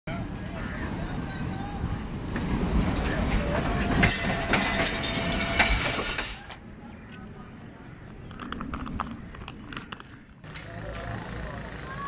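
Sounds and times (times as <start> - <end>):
diesel locomotive rumble: 0.1 - 12.0
wheels clicking over rail joints: 1.3 - 12.0.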